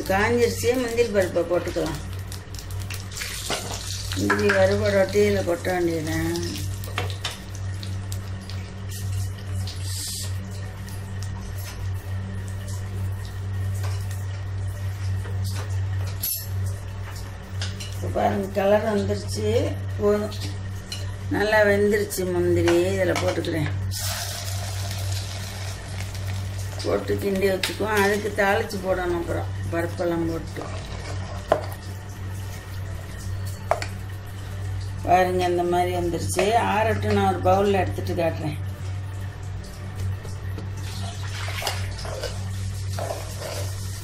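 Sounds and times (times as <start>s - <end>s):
low constant hum: 0.0s - 44.0s
hot fat sizzling in pan: 1.7s - 11.8s, 23.9s - 27.4s, 40.8s - 44.0s
gas burner hissing: 23.9s - 31.8s.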